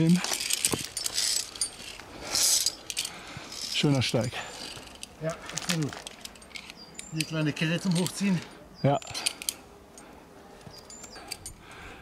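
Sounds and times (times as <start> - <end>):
carabiners clinking on steel cable: 0.0 - 10.1, 10.7 - 11.9.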